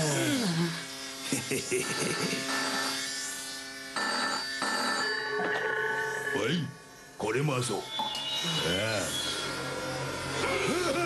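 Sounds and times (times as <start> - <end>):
tattoo machine buzzing: 0.0 - 7.2, 7.8 - 11.0
telephone ringing: 4.0 - 6.8.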